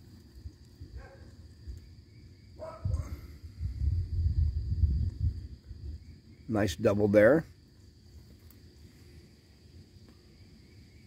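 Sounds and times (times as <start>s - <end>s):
low rumble on microphone: 0.0s - 6.5s
high insect drone: 0.0s - 11.0s.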